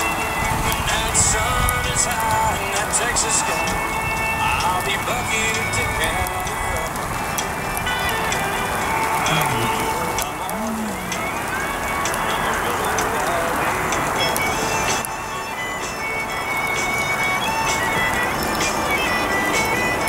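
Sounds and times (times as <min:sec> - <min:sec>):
drops ticking: 0:00.0 - 0:20.0
faint music: 0:00.0 - 0:20.0
steady rain: 0:00.0 - 0:20.0.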